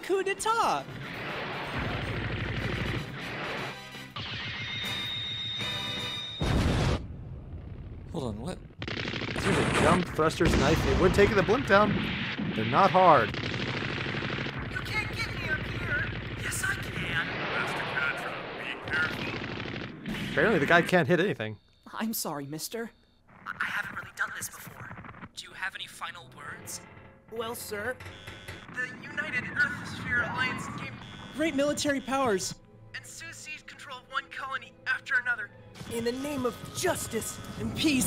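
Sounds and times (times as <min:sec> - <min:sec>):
rapid gunfire effects: 0:01.0 - 0:05.1, 0:08.8 - 0:20.8, 0:28.6 - 0:31.9
background music: 0:30.2 - 0:38.0.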